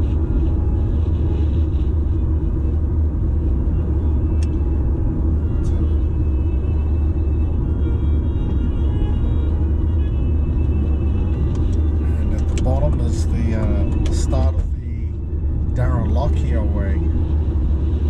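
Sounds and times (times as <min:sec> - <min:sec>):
car road rumble: 0:00.0 - 0:18.0
faint music: 0:00.0 - 0:18.0.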